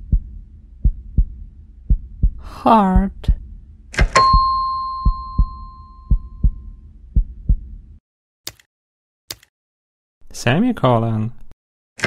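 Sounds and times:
cartoon heartbeat thumps: 0.0s - 7.9s
bell-like ding: 4.2s - 6.5s.

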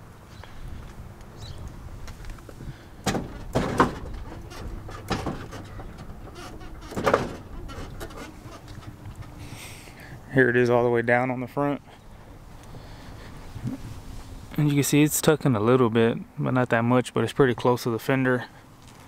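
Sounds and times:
suspension clunks: 2.0s - 9.5s.

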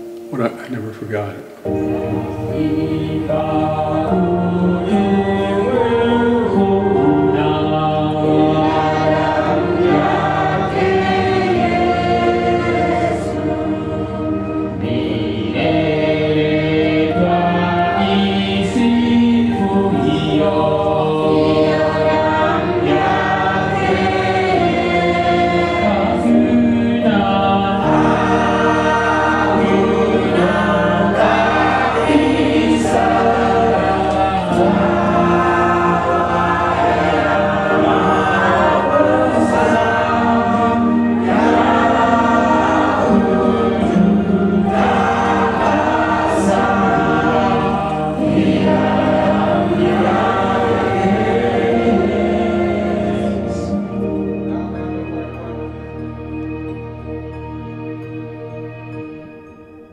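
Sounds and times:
choir singing: 0.0s - 59.9s
sustained low accompaniment: 0.0s - 59.9s.

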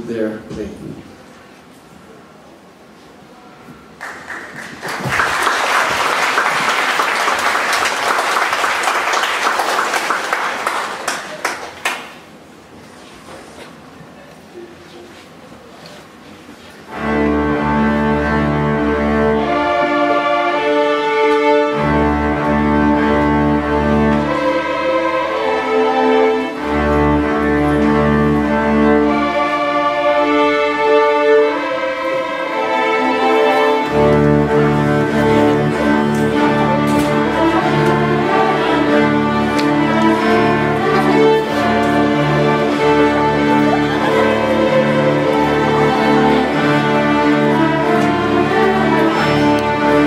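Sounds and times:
string orchestra playing chords: 16.8s - 50.0s.

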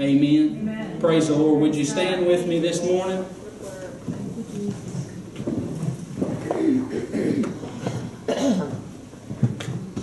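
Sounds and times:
faint murmur of voices: 0.0s - 10.0s.

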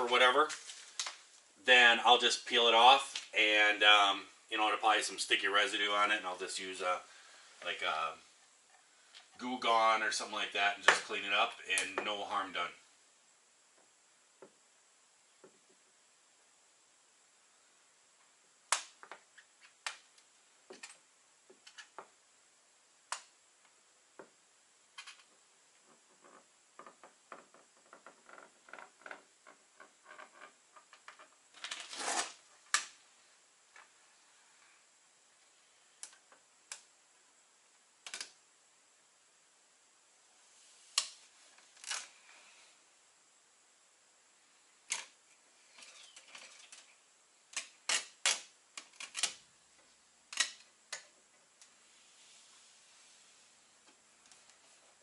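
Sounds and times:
rustling of trim strip: 31.6s - 33.0s.

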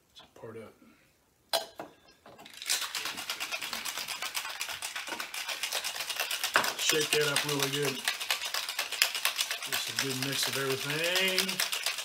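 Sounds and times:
ice rattling in cocktail shaker: 2.4s - 12.0s.

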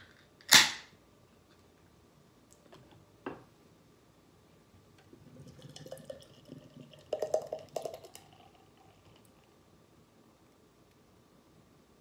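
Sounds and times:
beer pouring into glass mug: 5.0s - 9.5s.

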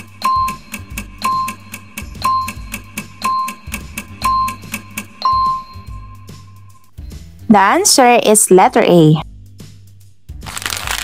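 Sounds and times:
bell-like timer beeps: 0.1s - 6.8s.

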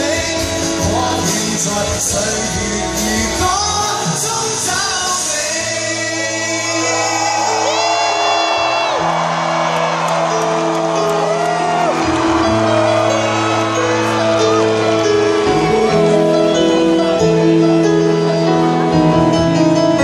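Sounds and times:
band playing ballad: 0.0s - 20.0s
crowd whooping: 6.4s - 16.9s.

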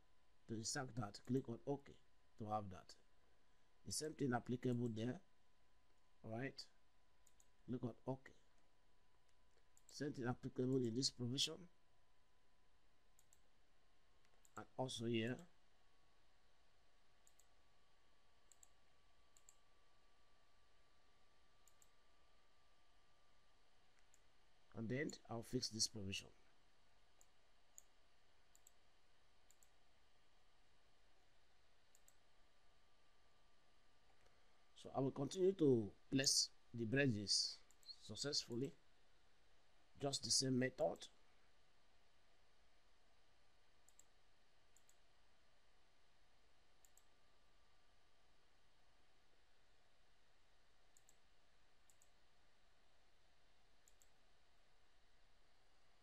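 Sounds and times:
low room hiss: 0.0s - 56.0s
computer mouse clicks: 7.2s - 7.5s, 13.2s - 13.5s, 17.2s - 17.5s, 18.5s - 19.6s, 21.6s - 22.0s, 27.2s - 27.9s, 28.5s - 28.8s, 29.4s - 29.8s, 31.9s - 32.2s, 37.7s - 38.7s, 43.8s - 44.1s, 44.7s - 45.0s, 46.8s - 47.1s, 50.9s - 51.2s, 51.8s - 52.2s, 53.8s - 54.2s.

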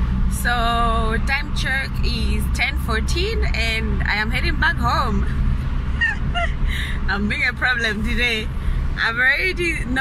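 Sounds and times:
car cabin rumble: 0.0s - 10.0s
woman talking: 0.4s - 5.3s, 7.1s - 10.0s.

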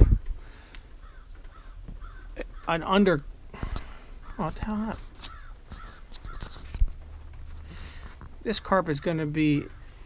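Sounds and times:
camera handling clicks and rustles: 5.1s - 8.4s.

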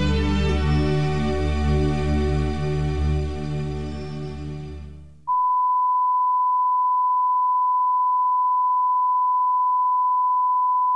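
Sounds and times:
background music: 0.0s - 5.3s.

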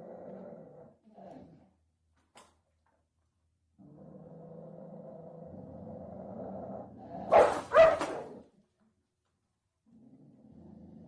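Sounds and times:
dog barking: 7.3s - 8.4s.

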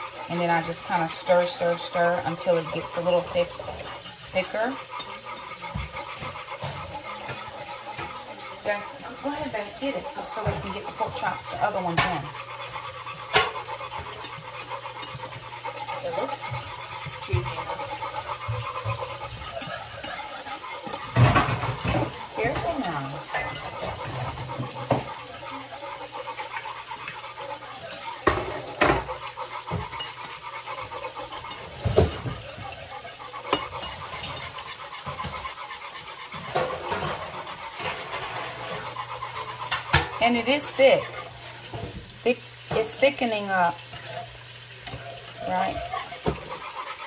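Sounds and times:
whisk knocking against pot: 0.0s - 47.0s
whisk stirring sauce: 0.0s - 47.0s.

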